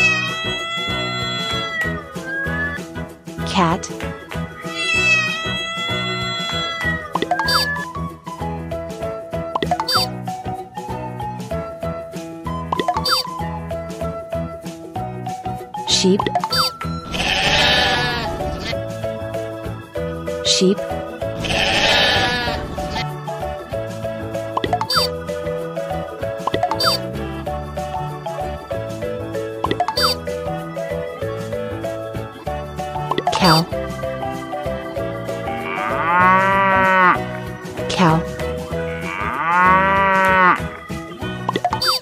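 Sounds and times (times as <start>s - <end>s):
background music: 0.0s - 42.0s
sheep bleating: 4.6s - 7.0s, 17.1s - 18.8s, 21.4s - 23.0s, 35.6s - 37.2s, 38.8s - 40.6s
cow mooing: 17.1s - 18.5s, 21.4s - 22.8s, 35.5s - 37.2s, 38.8s - 40.6s.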